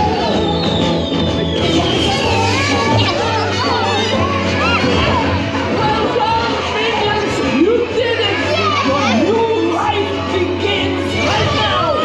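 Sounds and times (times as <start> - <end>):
squeaky cartoon voices chattering: 1.5 - 5.5.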